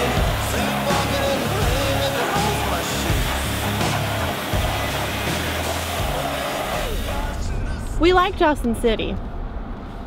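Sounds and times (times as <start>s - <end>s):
pressure washer spray hissing: 0.0s - 7.6s
background music: 0.0s - 8.5s.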